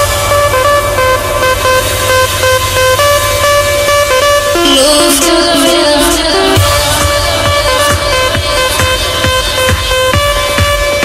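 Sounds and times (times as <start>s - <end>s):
buzzy synth lead: 0.0s - 11.0s
low bass: 0.0s - 11.0s.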